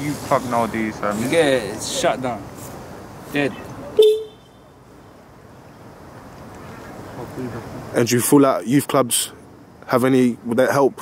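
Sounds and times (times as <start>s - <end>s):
faint background noise: 0.0s - 11.0s
scooter horn beep: 4.0s - 4.6s.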